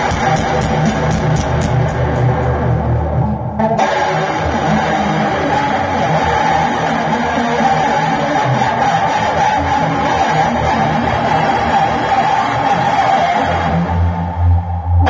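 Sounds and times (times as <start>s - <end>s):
electric guitar rock part: 0.0s - 14.5s.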